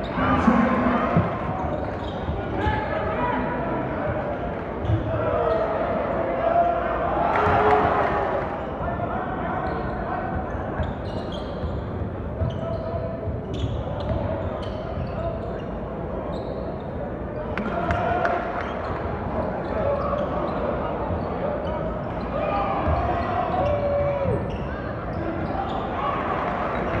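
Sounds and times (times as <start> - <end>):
sneakers squeaking: 0.0 - 5.8, 9.6 - 17.0, 19.6 - 27.0
crowd chatter and shouts: 0.0 - 27.0.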